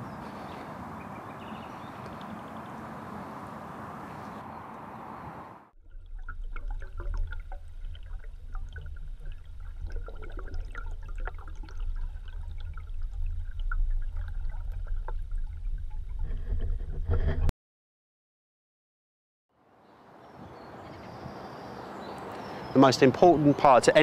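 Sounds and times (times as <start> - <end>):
muffled underwater rumble: 5.8 - 17.5.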